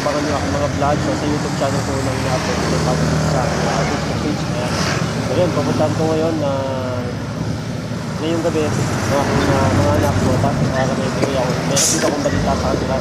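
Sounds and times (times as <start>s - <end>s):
road traffic noise: 0.0s - 13.0s.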